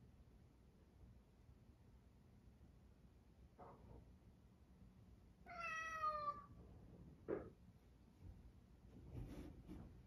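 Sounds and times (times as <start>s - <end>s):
cat meowing: 5.4s - 6.6s.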